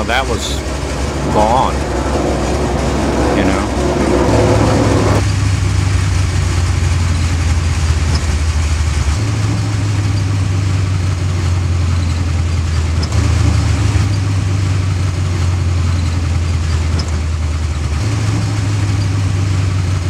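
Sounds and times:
car engine running: 0.0 - 20.0.

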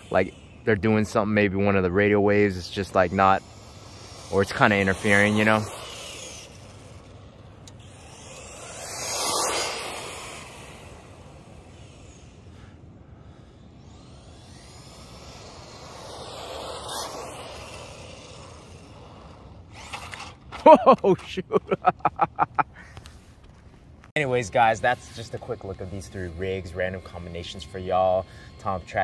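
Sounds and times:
toy truck motor and tyres passing: 0.0 - 23.4, 24.2 - 29.0.

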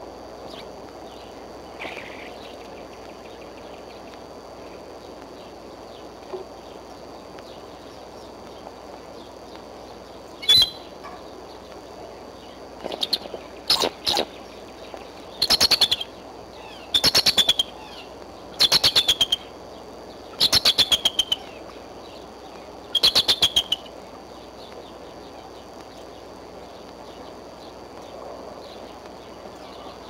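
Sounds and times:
eagle chattering: 15.4 - 19.6, 20.3 - 21.7, 22.9 - 24.0.

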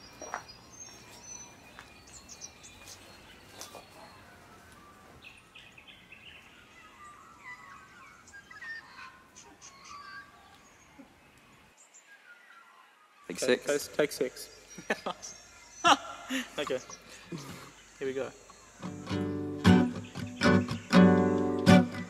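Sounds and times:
quiet outdoor ambience: 0.0 - 22.0
small birds chirping and trilling: 0.0 - 22.0.

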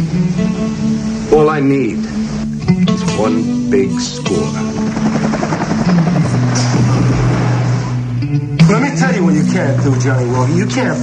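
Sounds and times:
music: 0.0 - 11.0
helicopter rotor chopping: 4.3 - 8.1.

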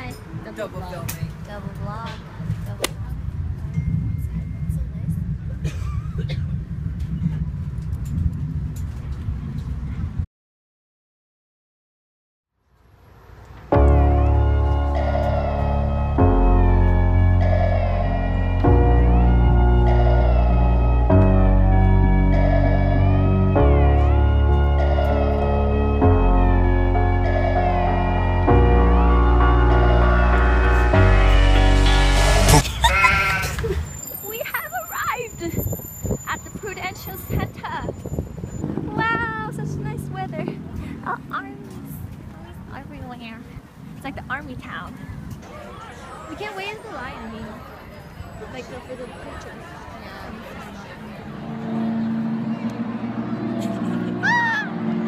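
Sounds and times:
city street noise: 0.0 - 10.2, 12.6 - 55.0.

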